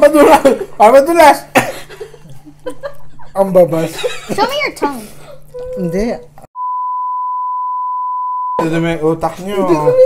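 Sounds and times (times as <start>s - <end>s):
high censor beep: 6.6s - 8.6s.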